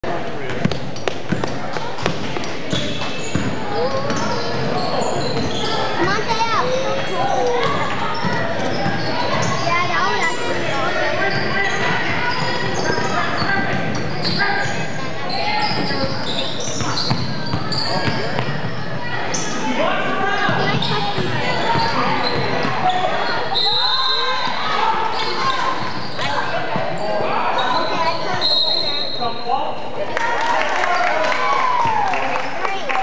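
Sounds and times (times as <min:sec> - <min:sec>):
voices calling out in a hall: 0:00.0 - 0:33.0.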